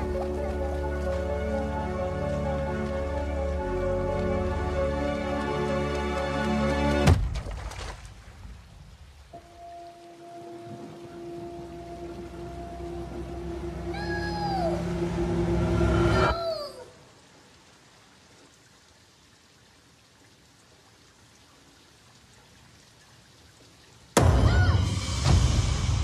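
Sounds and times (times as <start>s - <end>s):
faint rain: 0.0s - 26.0s
downward-sliding wailing notes: 9.4s - 16.4s
held drone: 10.4s - 16.4s
low rumble: 10.6s - 16.4s.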